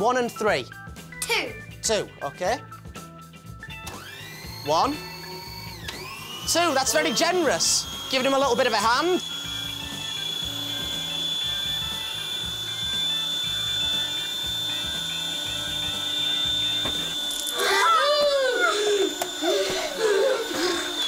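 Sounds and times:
background music: 0:00.0 - 0:21.0
blender motor whine: 0:03.7 - 0:21.0
children screaming: 0:17.5 - 0:21.0.

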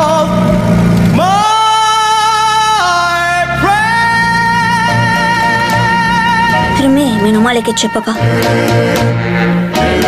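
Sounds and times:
motorcycle engine running low: 0:00.0 - 0:10.0
person singing with vibrato: 0:00.0 - 0:10.0
soft backing music: 0:00.0 - 0:10.0.

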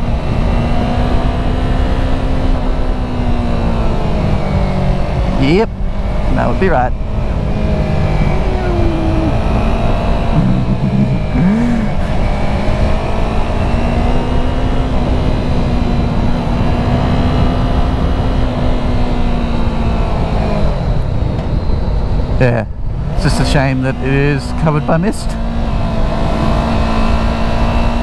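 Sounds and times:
motorcycle engine running: 0:00.0 - 0:21.6
wind rush: 0:04.7 - 0:14.0.

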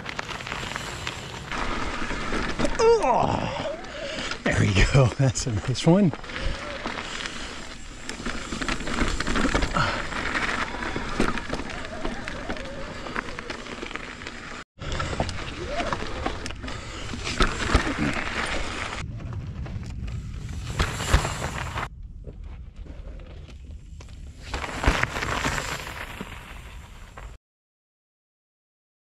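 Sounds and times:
bike rattling: 0:00.0 - 0:27.4
bike tyres crunching over gravel: 0:00.0 - 0:27.4.

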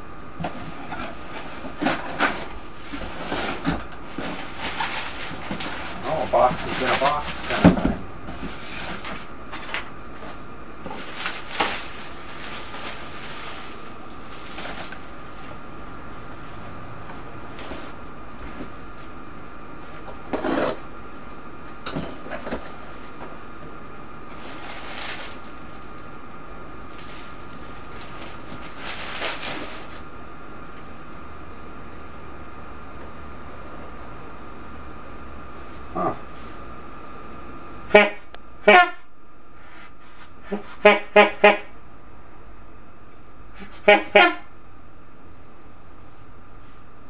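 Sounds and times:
steady background hum: 0:00.0 - 0:47.0
bubble wrap and cardboard rustling: 0:00.4 - 0:19.2, 0:24.3 - 0:26.2, 0:26.8 - 0:30.1.

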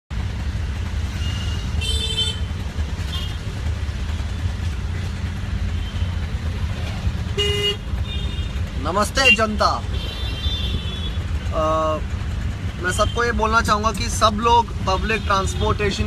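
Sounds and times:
engine and road rumble: 0:00.1 - 0:16.0
vehicle horns tooting: 0:01.1 - 0:03.4, 0:07.3 - 0:11.2, 0:14.9 - 0:16.0.

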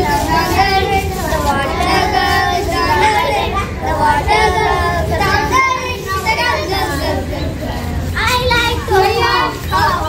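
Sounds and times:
children singing and chanting: 0:00.0 - 0:10.0.

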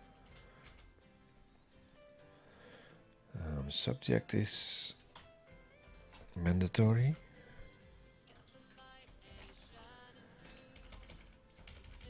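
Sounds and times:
computer keyboard typing: 0:00.2 - 0:00.9, 0:08.3 - 0:12.0.

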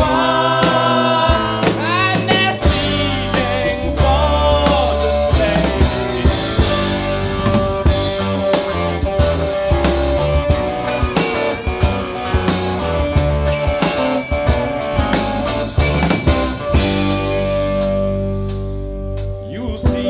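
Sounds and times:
drum kit beat: 0:00.0 - 0:20.0
folk-rock band playing: 0:00.0 - 0:20.0.

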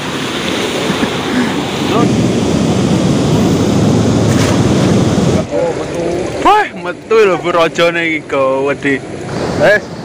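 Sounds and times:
floodwater rushing through sluice: 0:00.0 - 0:10.0.

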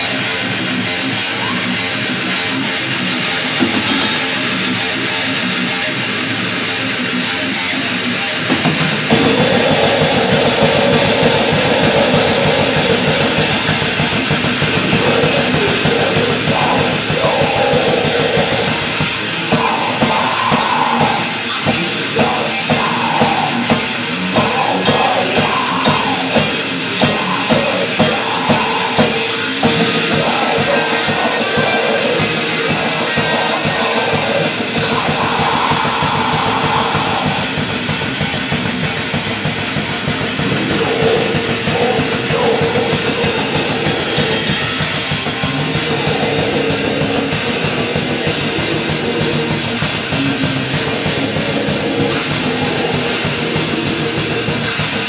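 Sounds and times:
heavy metal electric guitar: 0:00.0 - 0:55.0
drum kit: 0:03.5 - 0:04.8, 0:08.5 - 0:55.0.

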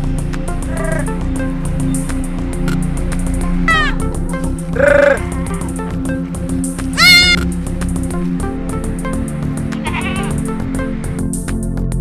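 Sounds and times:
goat bleating: 0:00.7 - 0:01.1, 0:03.7 - 0:04.0, 0:04.7 - 0:05.8, 0:07.0 - 0:07.4, 0:09.8 - 0:10.4.

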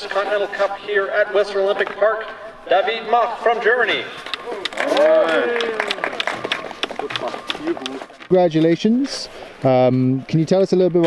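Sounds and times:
small crowd clapping: 0:04.2 - 0:08.1.

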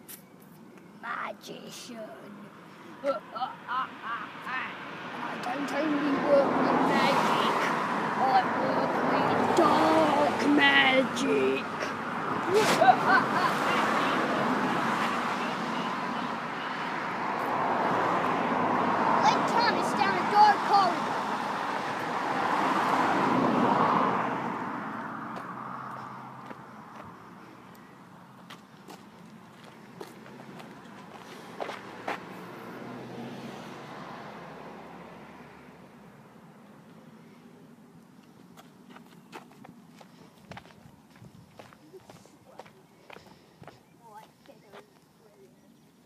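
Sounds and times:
car passing by: 0:03.7 - 0:38.0
footsteps on dirt path: 0:25.3 - 0:32.4, 0:38.4 - 0:45.2.

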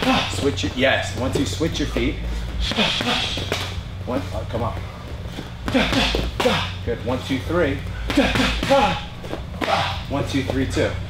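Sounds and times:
gloves and kicks hitting pads: 0:00.0 - 0:03.9, 0:05.4 - 0:06.8, 0:08.0 - 0:10.7.

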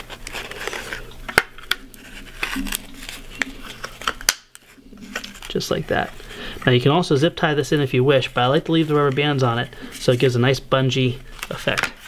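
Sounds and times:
hands handling foam and rubber bands: 0:11.4 - 0:12.0.

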